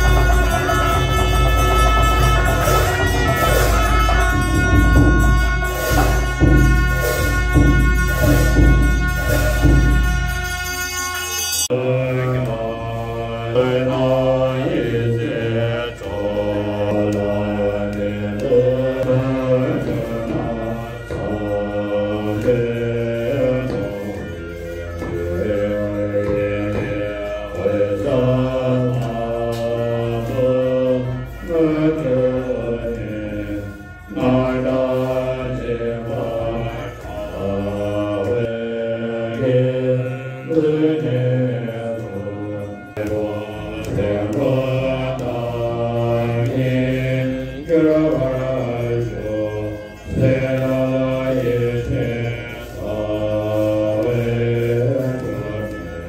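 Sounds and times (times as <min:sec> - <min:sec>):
melodic mantra chanting: 0:00.0 - 0:56.0.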